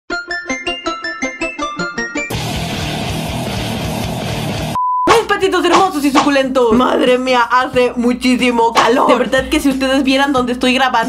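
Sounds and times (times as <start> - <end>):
intro music: 0.1 - 6.1
short pure beep tone: 4.8 - 5.1
person talking: 5.1 - 11.0.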